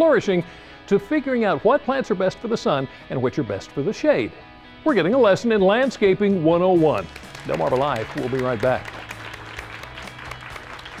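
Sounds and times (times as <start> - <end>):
soft background music: 0.0 - 11.0
applause: 6.9 - 11.0.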